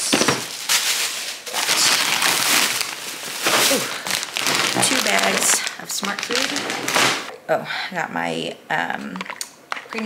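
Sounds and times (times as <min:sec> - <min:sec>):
plastic bags rustling: 0:00.0 - 0:07.3.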